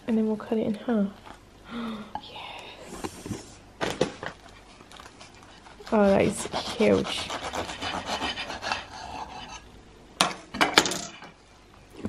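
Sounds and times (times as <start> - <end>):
knife sawing through crusty bread: 4.7 - 9.7.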